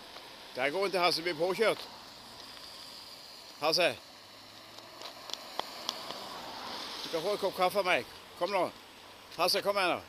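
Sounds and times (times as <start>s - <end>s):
car tyres hissing on wet asphalt: 0.0s - 10.0s.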